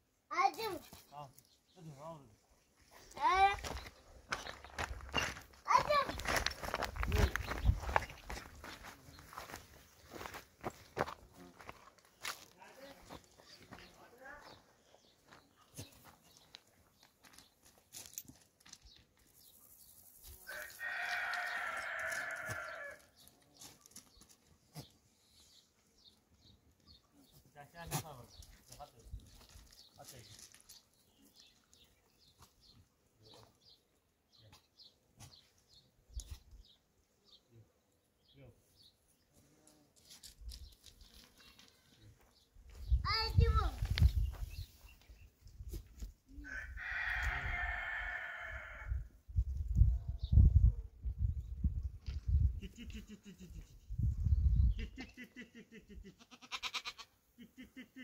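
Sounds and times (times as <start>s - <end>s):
long farm animal call: 20.4s - 23.8s, 46.3s - 49.2s, 52.5s - 54.0s, 54.6s - 58.0s.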